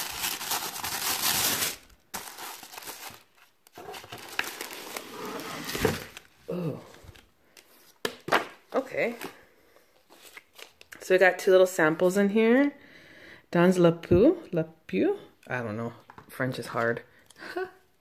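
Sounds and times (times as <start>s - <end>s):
tissue paper crinkling: 0.0s - 6.4s.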